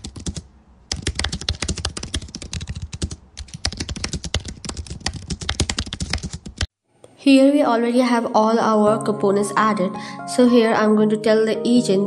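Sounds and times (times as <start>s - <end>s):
fast typing on keyboard: 0.0s - 6.7s.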